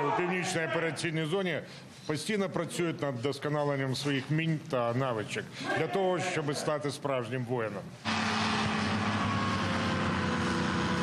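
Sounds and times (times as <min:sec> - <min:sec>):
vehicle engine droning: 0:08.0 - 0:11.0.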